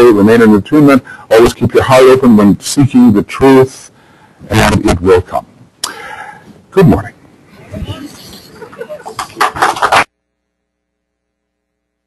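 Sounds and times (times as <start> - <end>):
faint electrical hum: 0.0 - 12.0
person laughing: 8.0 - 10.0.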